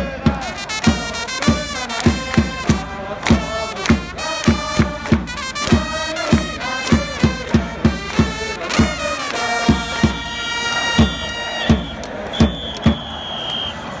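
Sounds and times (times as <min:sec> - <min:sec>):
bass drum beats: 0:00.0 - 0:10.2
trumpets playing cheer song: 0:00.0 - 0:14.0
fans clapping: 0:00.4 - 0:14.0.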